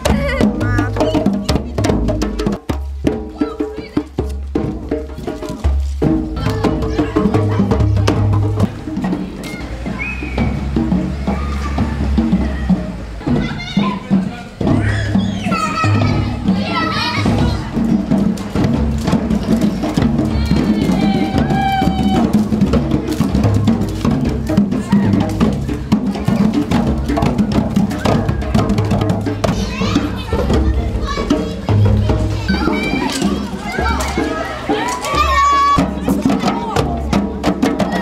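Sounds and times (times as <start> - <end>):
children's voices: 0.0 - 38.0
music with bass and wood-block percussion: 0.0 - 38.0.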